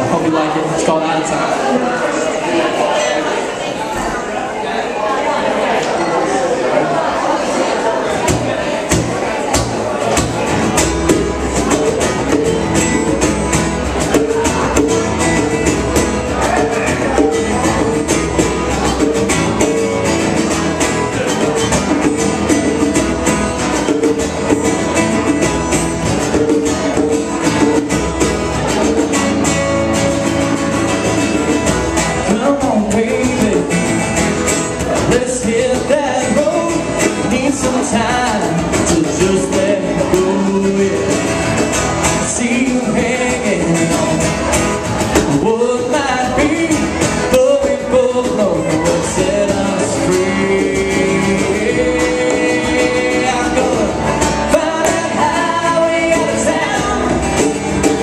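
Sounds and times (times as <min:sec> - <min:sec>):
acoustic guitars strummed: 0:00.0 - 0:04.6, 0:05.4 - 0:58.0
person singing: 0:32.2 - 0:34.2, 0:34.8 - 0:44.5, 0:45.2 - 0:58.0.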